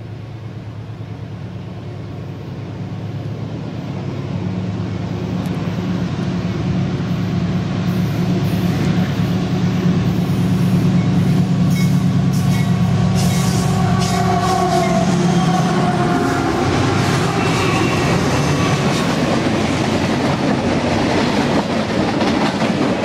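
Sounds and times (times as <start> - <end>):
diesel locomotive engine drone: 0.0 - 23.0.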